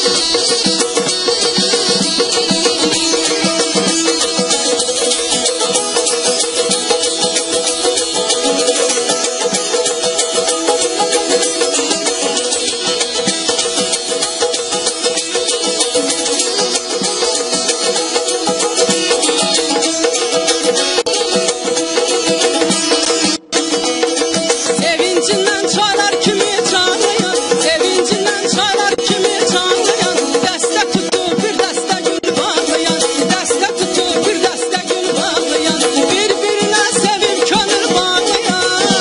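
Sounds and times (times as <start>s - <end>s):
long-necked lute strummed rapidly: 0.0s - 39.0s.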